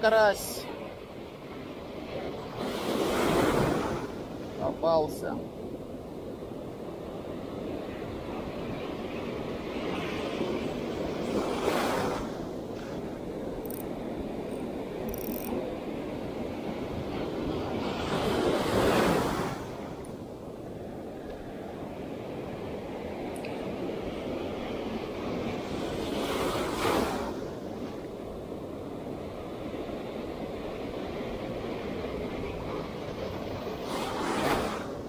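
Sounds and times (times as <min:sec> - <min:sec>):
waves breaking on shore: 0:00.0 - 0:35.0.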